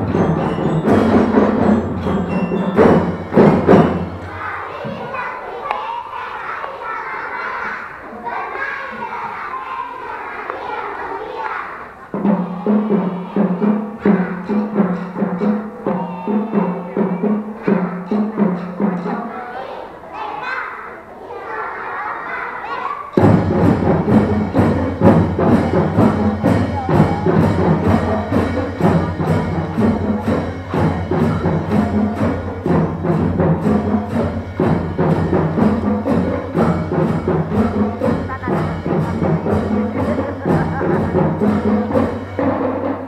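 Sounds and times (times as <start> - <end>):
heavy percussion hits: 0.0 - 5.6, 12.1 - 19.8, 23.2 - 43.0
drum band music: 0.0 - 21.8, 23.1 - 43.0
children chattering and calling: 0.0 - 43.0
murmur of voices: 0.0 - 43.0.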